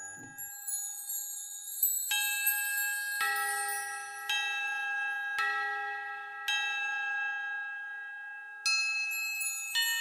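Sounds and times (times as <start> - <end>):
bell-like chime music: 0.0 - 10.0.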